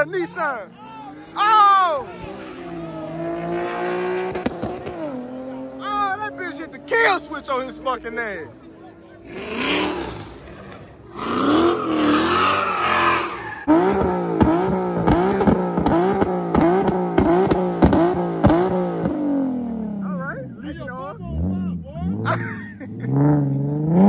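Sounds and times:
car engine revving: 0:00.0 - 0:24.0.

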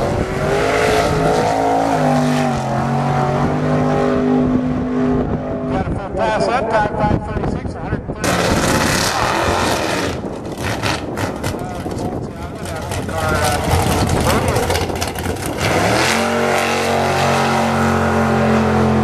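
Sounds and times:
pickup truck engine revving: 0:00.0 - 0:05.7, 0:08.2 - 0:12.0, 0:12.6 - 0:19.0.

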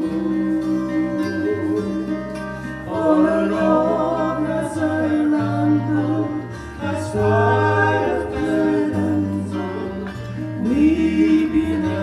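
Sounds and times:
acoustic guitars: 0:00.0 - 0:12.0
vocal harmony singing: 0:00.0 - 0:12.0.

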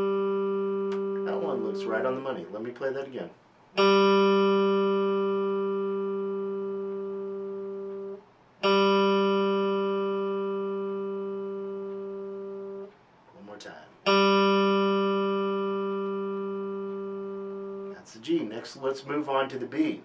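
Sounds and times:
electric guitar string plucked: 0:00.0 - 0:02.2, 0:03.8 - 0:13.0, 0:14.0 - 0:18.0.

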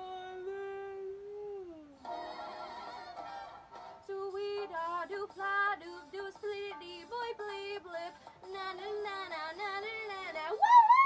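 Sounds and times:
woman singing: 0:04.1 - 0:11.0.

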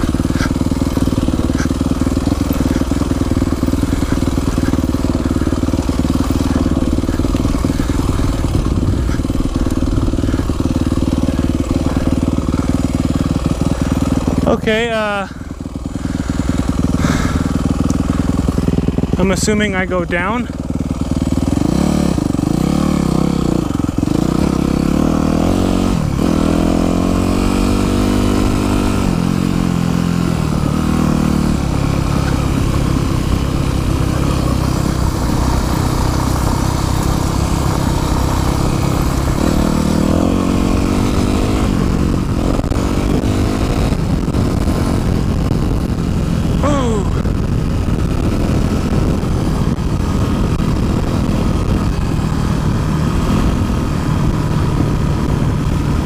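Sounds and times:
dirt bike engine accelerating: 0:00.0 - 0:56.0
wind noise on microphone: 0:31.5 - 0:56.0.

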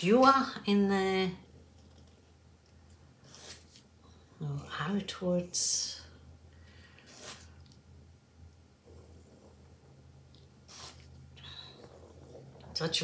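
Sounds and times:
steady low hum: 0:00.0 - 0:13.0
soft breaths: 0:06.1 - 0:07.7, 0:08.7 - 0:12.8.

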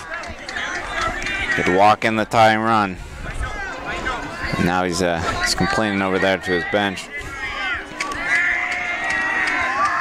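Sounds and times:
distant shouting and chanting: 0:00.0 - 0:10.0.

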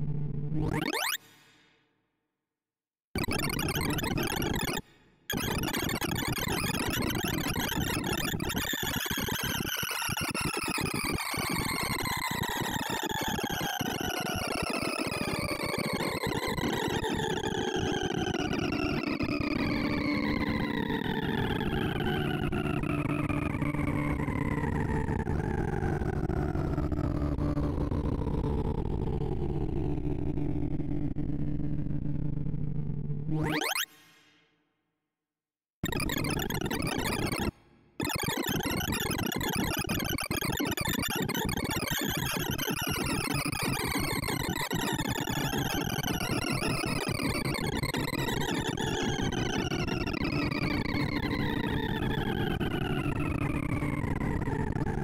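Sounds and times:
synthesized buzzing tone falling in pitch: 0:00.0 - 0:01.2, 0:16.7 - 0:33.9, 0:35.8 - 0:55.0
rapid synthesized beeps: 0:00.6 - 0:01.2, 0:33.4 - 0:33.9, 0:35.8 - 0:46.3.

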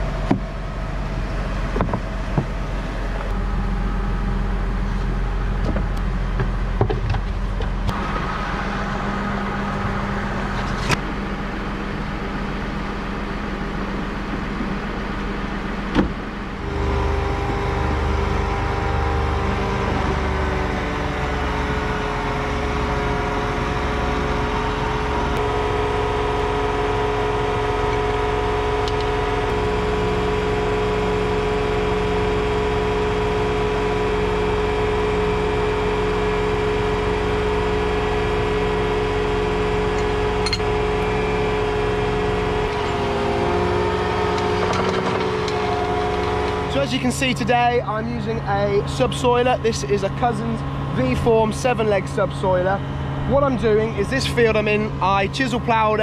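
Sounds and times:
tractor diesel engine idling: 0:00.0 - 0:56.0.

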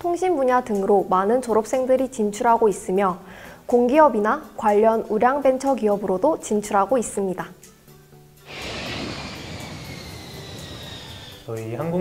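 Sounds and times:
jet airplane flyby whoosh: 0:08.5 - 0:11.6.

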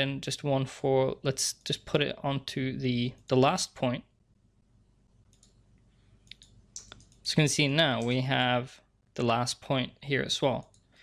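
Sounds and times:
computer mouse clicks: 0:05.2 - 0:07.2, 0:10.6 - 0:10.9.

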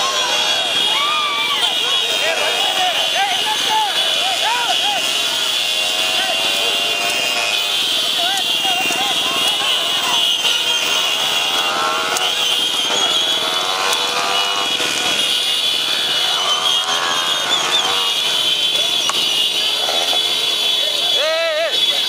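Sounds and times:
motorcycle engines at speed: 0:00.0 - 0:22.0
voices shouting: 0:00.0 - 0:22.0.

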